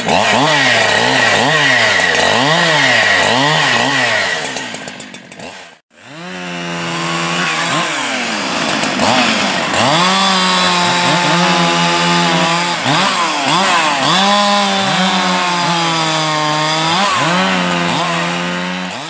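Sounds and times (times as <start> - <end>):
chainsaw cutting log: 0.0 - 19.0.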